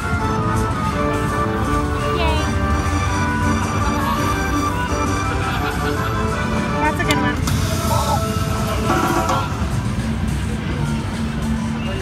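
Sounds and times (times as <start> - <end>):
casino crowd hubbub: 0.0 - 12.0.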